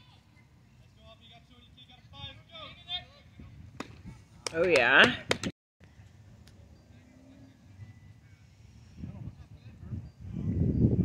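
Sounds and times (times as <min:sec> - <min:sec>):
baseball bat hitting ball: 0:03.8 - 0:05.5.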